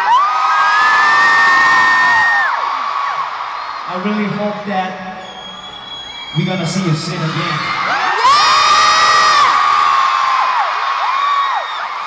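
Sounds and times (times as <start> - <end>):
crowd screaming and cheering: 0.0 - 12.0.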